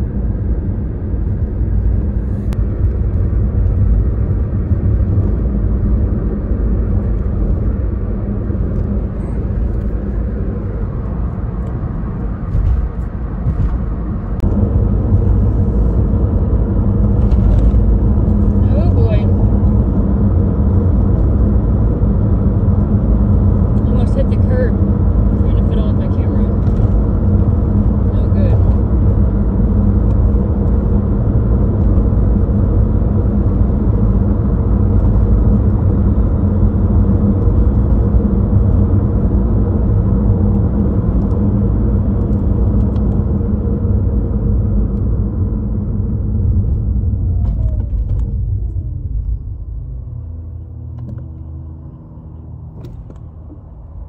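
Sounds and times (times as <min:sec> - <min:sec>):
car engine running inside cabin: 0:00.0 - 0:54.0.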